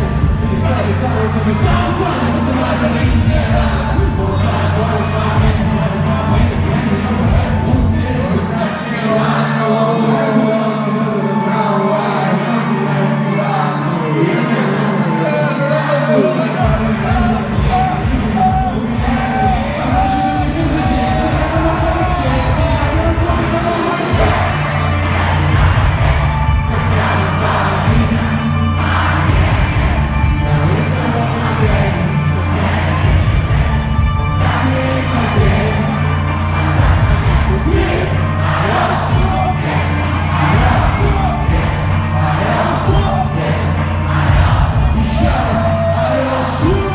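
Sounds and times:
heavy bass line: 0.0s - 8.6s, 16.6s - 46.9s
pop-rap song over a pa: 0.0s - 46.9s
crowd cheering: 12.0s - 46.9s.

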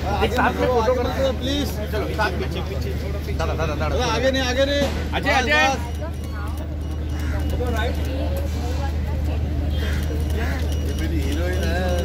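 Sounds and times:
voices calling out and chatting: 0.0s - 12.0s.

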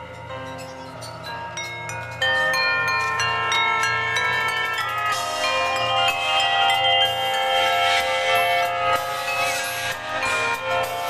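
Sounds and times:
bells and mallet keyboards chord: 0.0s - 11.0s.

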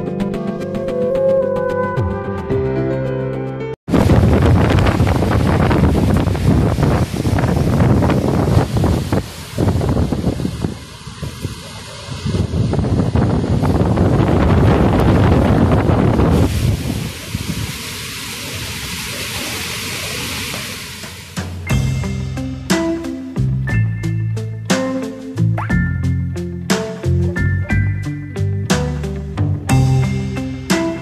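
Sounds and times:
wind buffeting microphone: 3.9s - 21.6s
gusting wind through trees: 3.9s - 22.3s.

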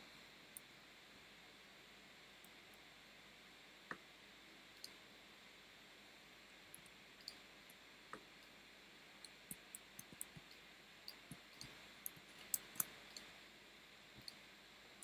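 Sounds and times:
low steady hiss: 0.0s - 15.0s
mouse and keyboard clicks: 11.1s - 13.3s.

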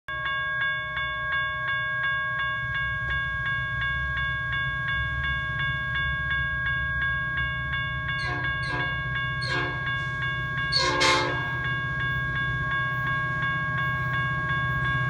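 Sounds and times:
crossing warning bell ringing: 0.1s - 15.0s
approaching train rumble: 1.2s - 15.0s.

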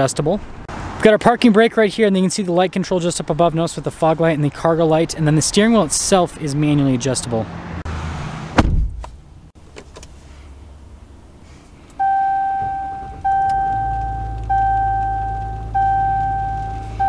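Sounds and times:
dashboard warning chime: 12.0s - 17.0s.

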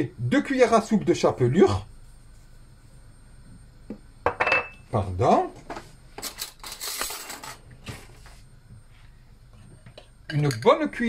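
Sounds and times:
spoon and dishes clinking: 4.3s - 4.8s, 10.3s - 10.8s.

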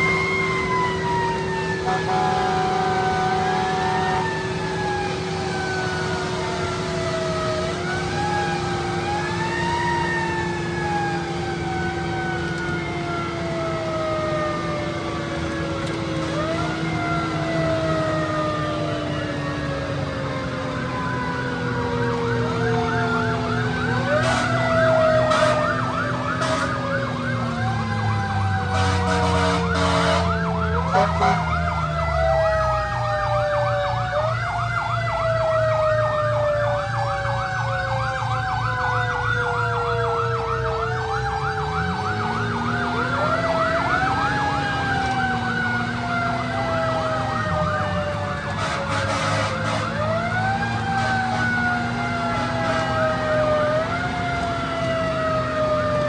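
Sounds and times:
electronic siren wailing: 0.0s - 56.0s.

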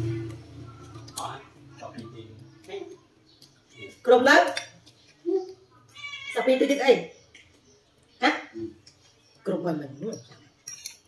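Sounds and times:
spoon clinking on plate: 10.0s - 11.0s.

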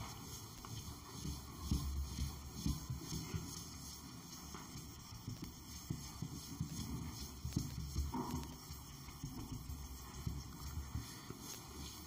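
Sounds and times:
eraser rubbing on whiteboard: 0.0s - 12.0s.

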